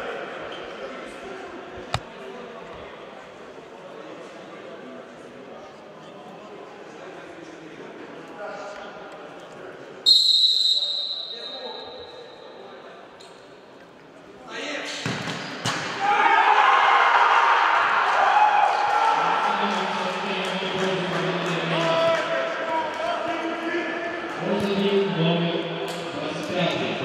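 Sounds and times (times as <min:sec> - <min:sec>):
referee's whistle blast: 0:10.1 - 0:12.4
players shouting: 0:15.9 - 0:19.6.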